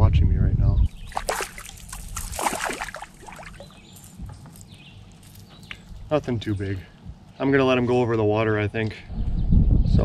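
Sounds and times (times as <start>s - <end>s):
fish splashing at water surface: 1.0s - 3.8s.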